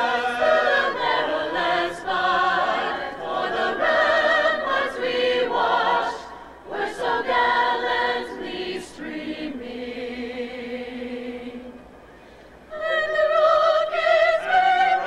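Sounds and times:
choir singing anthem: 0.0s - 11.8s, 12.7s - 15.0s.

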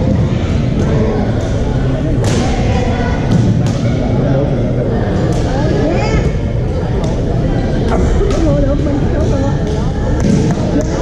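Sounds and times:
hum of voices: 0.0s - 11.0s.

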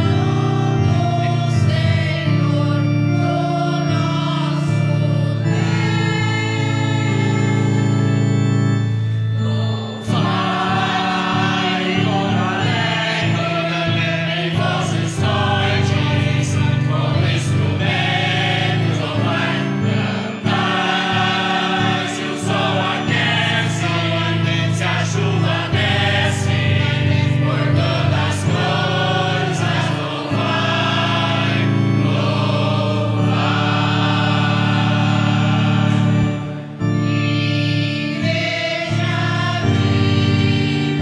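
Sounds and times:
choir singing a hymn: 0.0s - 41.0s
sustained instrumental accompaniment: 0.0s - 41.0s.

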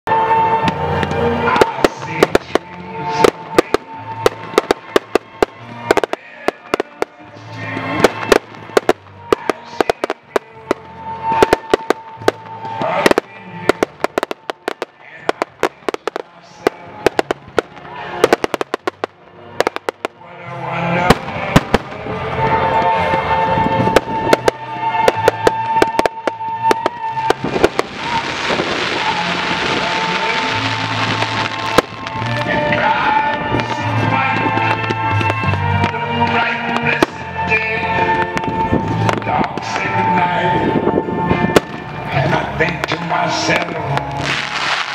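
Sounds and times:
fireworks bangs: 0.1s - 20.2s, 21.0s - 37.4s, 38.0s - 42.1s, 42.7s - 44.9s
music with bass line: 0.1s - 44.9s
fireworks fizzing: 0.7s - 20.2s, 23.8s - 35.7s, 43.5s - 44.9s.

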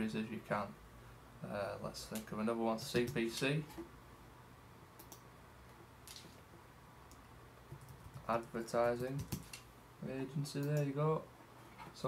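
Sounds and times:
computer mouse click: 5.0s - 5.2s.

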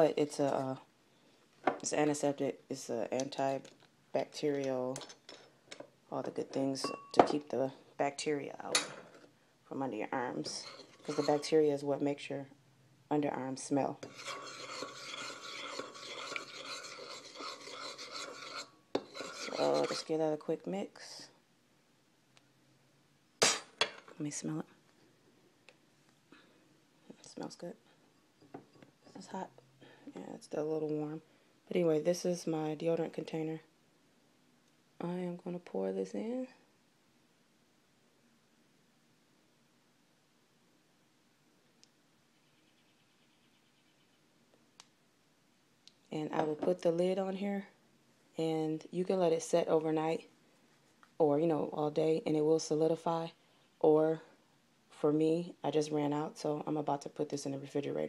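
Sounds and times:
metal spoon scraping ceramic bowl: 10.4s - 11.6s, 14.0s - 20.2s.

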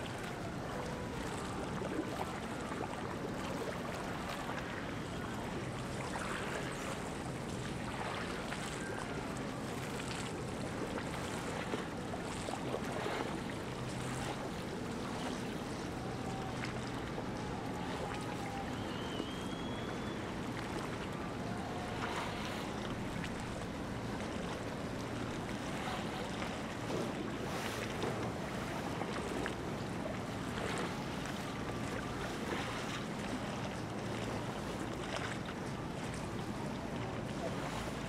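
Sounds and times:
motorboat engines droning: 0.0s - 38.0s
wind: 0.0s - 38.0s.

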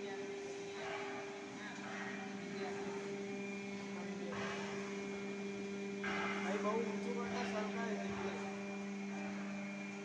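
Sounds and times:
low two-tone machine hum: 0.0s - 10.0s.

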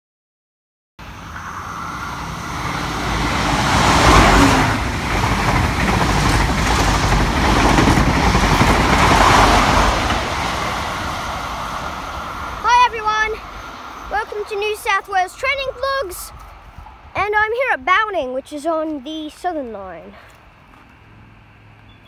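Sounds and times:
train passing at speed: 1.0s - 18.8s.

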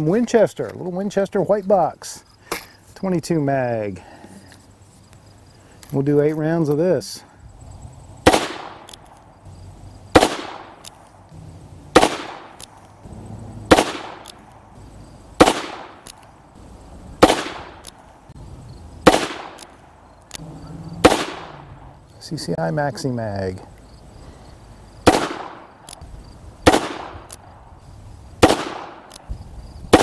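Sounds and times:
revolver shots: 10.1s - 10.8s, 11.9s - 12.6s, 13.6s - 14.5s, 15.4s - 16.1s, 21.0s - 21.7s.

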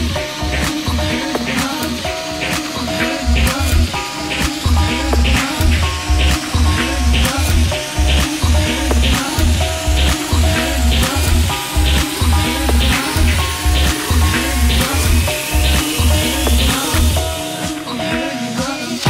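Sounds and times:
repeating synth notes: 0.0s - 17.8s
rising synth sweep: 2.8s - 17.8s
techno kick drum: 4.6s - 17.3s.

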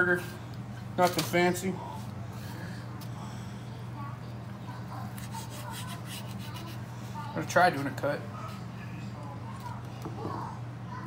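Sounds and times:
steady low hum: 0.0s - 11.0s
burger rubbing on paper plate: 5.0s - 7.1s.

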